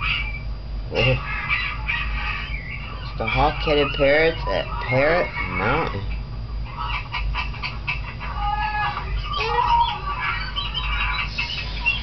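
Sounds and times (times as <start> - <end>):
parrot squeaky calls and squawks: 0.0 - 5.9, 6.7 - 12.0.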